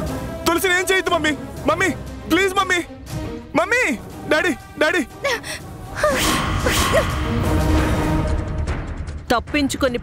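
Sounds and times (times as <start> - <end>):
background music: 0.0 - 10.0
woman crying: 5.1 - 7.2.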